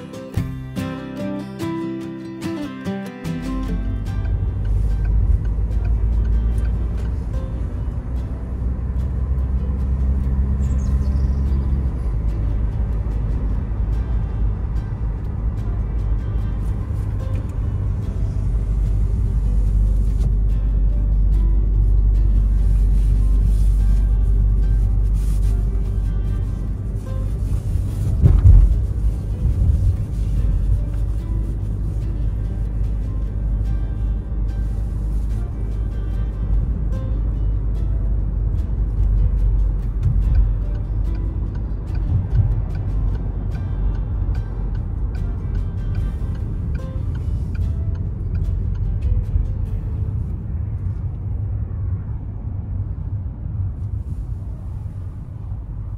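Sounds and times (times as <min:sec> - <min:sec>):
car road and engine rumble: 0:00.0 - 0:55.9.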